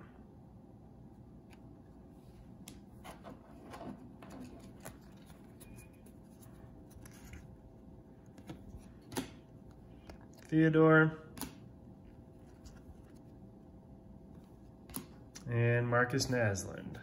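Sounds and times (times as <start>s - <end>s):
trading cards rustling: 3.0s - 7.6s, 11.3s - 13.5s.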